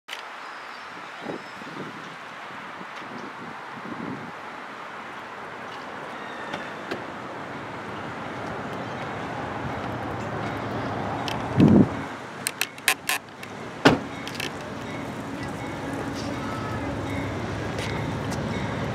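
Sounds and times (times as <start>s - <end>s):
distant train rumble and hiss: 0.6s - 18.9s.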